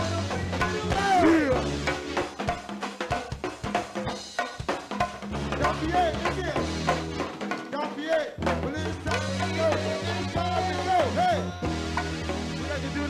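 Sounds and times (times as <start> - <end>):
bass line: 0.0 - 2.4, 5.3 - 7.4, 8.3 - 13.0
drum kit and percussion groove: 0.0 - 13.0.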